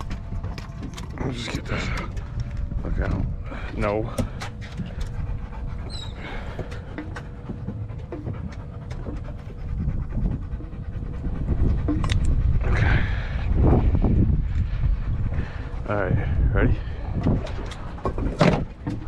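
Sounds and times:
dog panting: 0.0 - 19.0
steady low rumble: 0.0 - 19.0.

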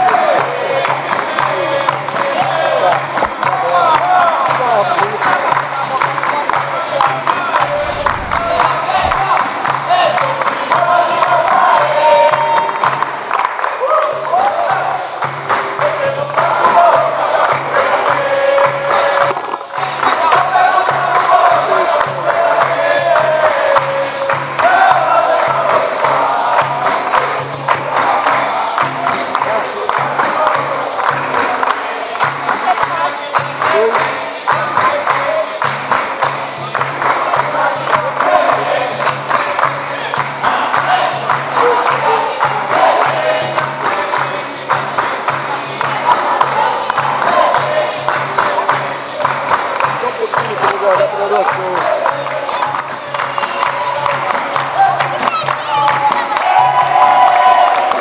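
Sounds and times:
group singing: 0.0 - 50.4, 51.0 - 58.0
people clapping along: 0.0 - 58.0
percussion beat: 0.0 - 58.0.

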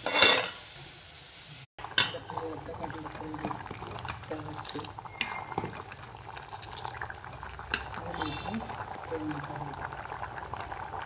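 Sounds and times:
curry bubbling and popping: 1.8 - 11.0.

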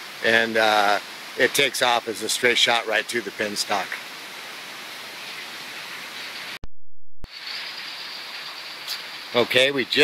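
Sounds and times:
outdoor rushing hiss: 0.0 - 6.6, 7.3 - 10.0.

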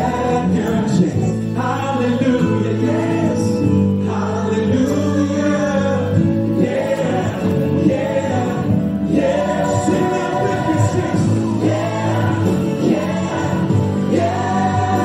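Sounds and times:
gospel choir singing: 0.0 - 15.0.

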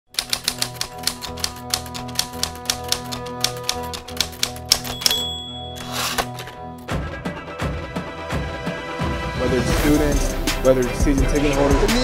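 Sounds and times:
typewriter keys clacking: 0.1 - 6.6
typewriter bell ding: 4.6 - 6.6.

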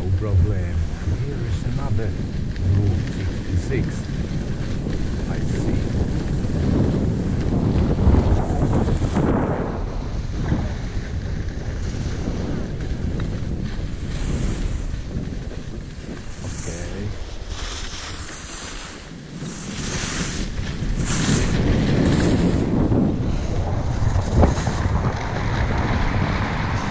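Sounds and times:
skis scraping over ice: 0.0 - 26.9
wind buffeting microphone: 0.0 - 26.9.

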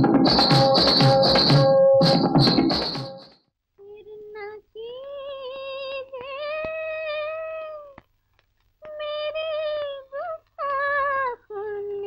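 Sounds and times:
woman singing without words: 3.8 - 8.0, 8.8 - 12.0.

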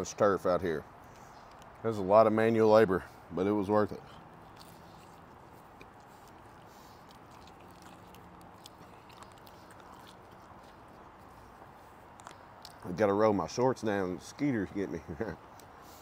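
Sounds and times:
low steady hiss: 0.0 - 8.8, 10.2 - 16.0
faint chewing: 1.0 - 1.8, 3.9 - 13.0.

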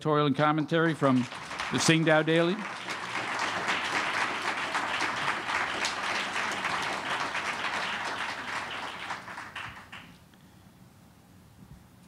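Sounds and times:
audience applauding: 0.4 - 10.2.

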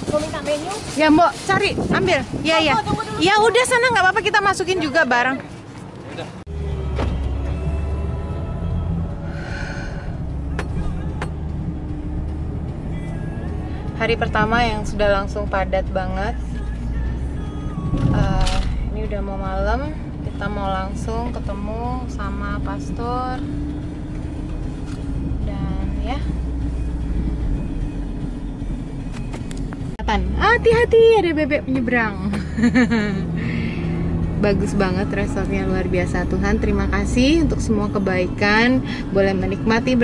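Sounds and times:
car engine and road drone: 0.0 - 40.0
music playing: 6.5 - 40.0.

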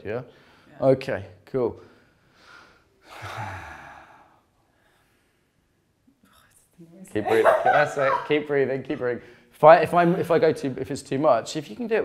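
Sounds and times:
faint breath: 0.3 - 0.8, 1.8 - 5.7
long breathy sigh: 2.5 - 4.9.

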